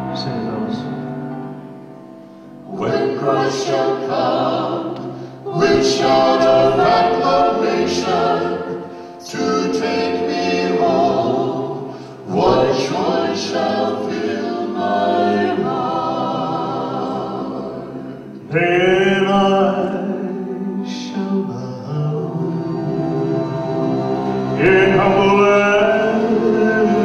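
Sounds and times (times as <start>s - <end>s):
vocal group singing in harmony: 2.6s - 27.0s.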